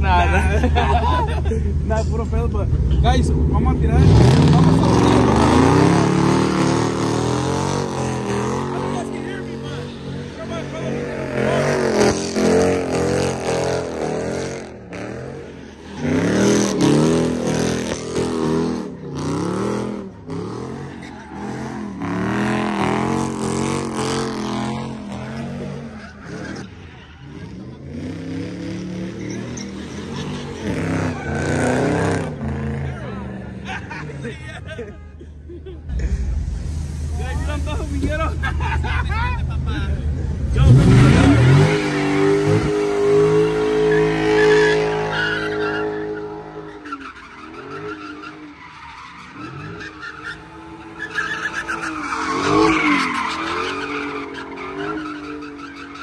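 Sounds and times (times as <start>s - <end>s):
car engine revving hard: 3.0s - 26.8s, 40.4s - 46.7s
tire squeal: 4.2s - 33.3s, 40.6s - 56.0s.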